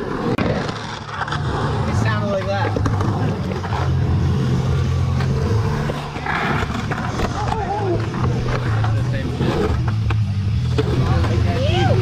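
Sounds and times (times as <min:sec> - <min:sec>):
skateboard clacks: 0:00.0 - 0:04.0, 0:05.0 - 0:12.0
skateboard wheels rolling on concrete: 0:00.0 - 0:12.0.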